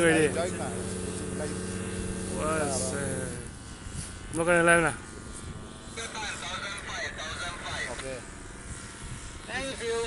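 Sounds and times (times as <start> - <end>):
distant paramotor droning: 0.0 - 10.0.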